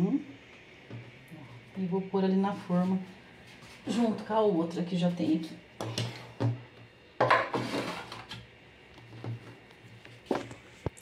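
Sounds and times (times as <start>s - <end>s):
baking pan scraping on stone: 7.2s - 8.4s.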